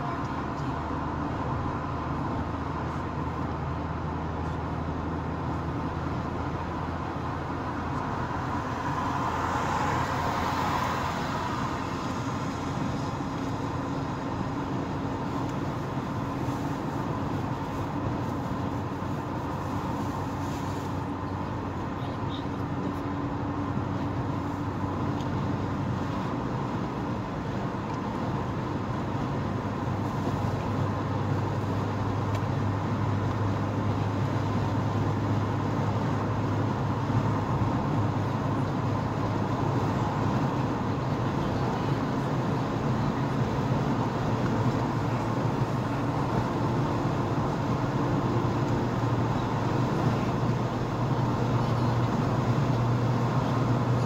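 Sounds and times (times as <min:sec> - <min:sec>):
car cabin road and engine noise: 0:00.0 - 0:54.0.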